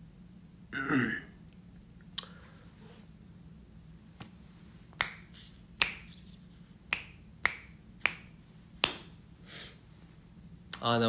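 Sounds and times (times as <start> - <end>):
fingers snapping: 5.0 - 9.1.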